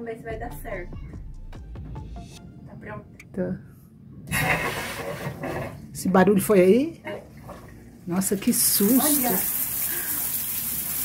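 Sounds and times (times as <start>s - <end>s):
shower water running: 8.2s - 11.0s.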